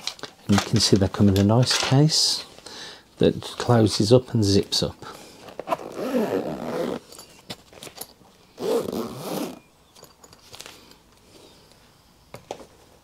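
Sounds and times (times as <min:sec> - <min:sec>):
zip being pulled closed: 0:05.7 - 0:07.1, 0:08.6 - 0:09.7.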